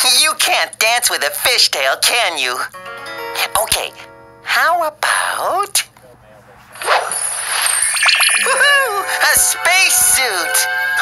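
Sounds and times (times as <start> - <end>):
twinkling chimes: 6.8 - 9.6.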